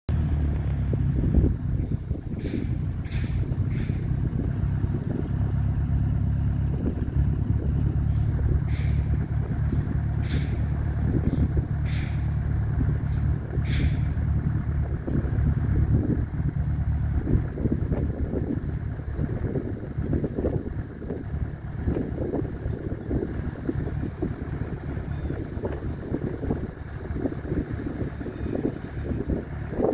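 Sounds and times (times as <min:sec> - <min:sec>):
wind buffeting microphone: 0:00.7 - 0:29.9.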